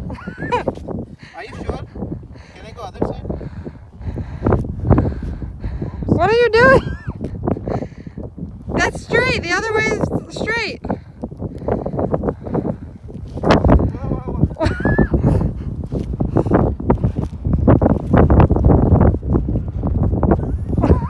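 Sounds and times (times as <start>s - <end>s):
person laughing: 0.0s - 0.8s, 6.6s - 7.3s, 13.9s - 15.6s, 20.4s - 21.0s
wind buffeting microphone: 0.0s - 21.0s.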